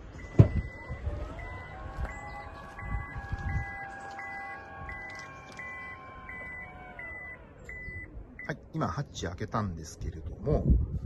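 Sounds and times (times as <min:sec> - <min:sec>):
door motor whine: 0:00.1 - 0:08.1
warning buzzer beeps: 0:01.4 - 0:08.5.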